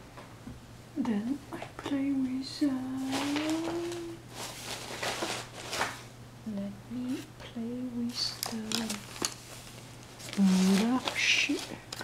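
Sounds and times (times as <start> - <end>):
faint low electrical hum: 0.0 - 12.0
soft rustles: 2.8 - 6.1, 8.1 - 12.0
woman humming softly: 6.5 - 9.0.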